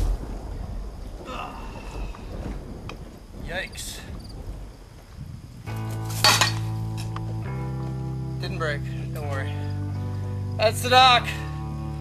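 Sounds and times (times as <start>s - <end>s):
held guitar chords: 5.7s - 12.0s
metal pole clanking: 6.1s - 7.1s.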